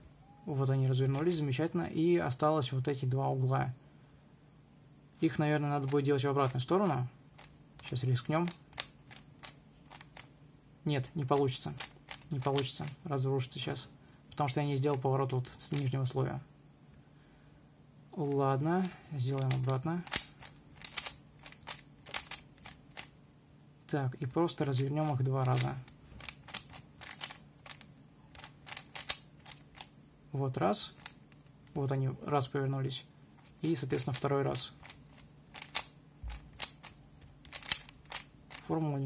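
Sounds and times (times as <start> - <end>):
puzzle cube plastic clicks: 1.1 - 1.4, 5.8 - 10.3, 11.2 - 13.0, 14.8 - 15.0, 18.2 - 23.2, 24.7 - 30.0, 30.9 - 31.8, 33.4 - 38.8.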